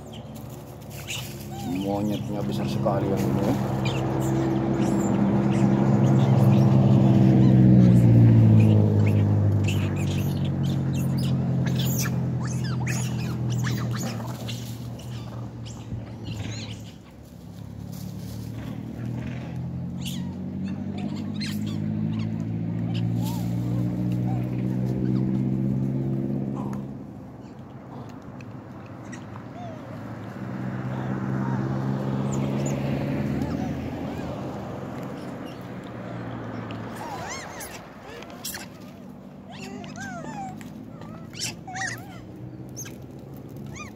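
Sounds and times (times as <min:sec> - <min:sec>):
vehicle approaching: 0:00.0 - 0:43.9
vehicle engine passing: 0:00.0 - 0:43.9.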